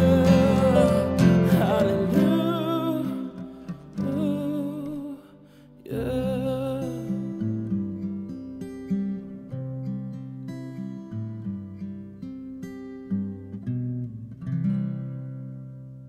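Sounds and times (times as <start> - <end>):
guitar strummed chord: 0.0 - 7.3
acoustic guitar picked notes: 0.0 - 16.0.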